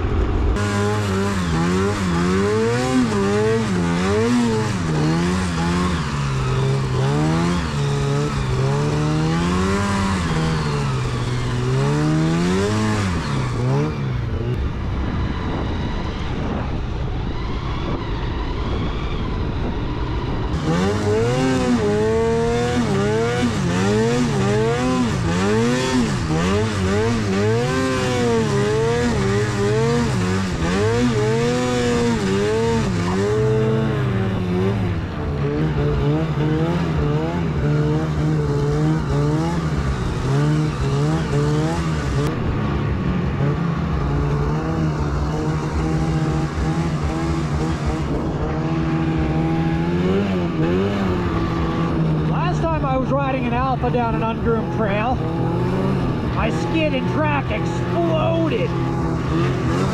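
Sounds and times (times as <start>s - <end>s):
snowmobile engine revving: 0.0s - 18.0s, 18.6s - 59.9s.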